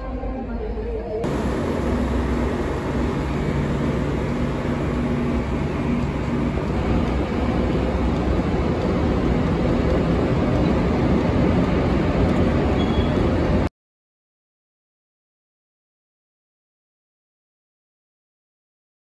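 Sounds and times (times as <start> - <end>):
low hum: 1.2 - 13.7
trains rumbling and hissing: 1.2 - 13.7.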